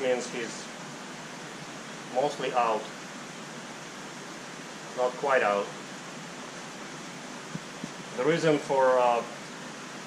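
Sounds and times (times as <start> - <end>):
aquarium hiss: 0.0 - 10.0.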